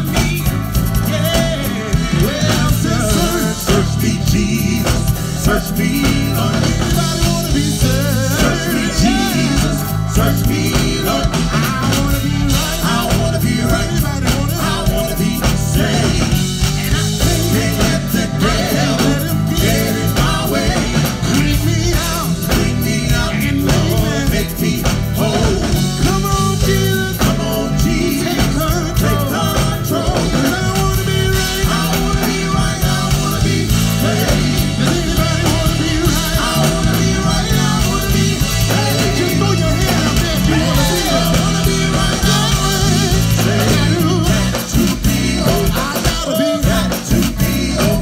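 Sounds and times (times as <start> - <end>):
gospel group singing with band: 0.0 - 48.0
steady drum beat: 0.0 - 48.0
strong bass: 0.0 - 48.0.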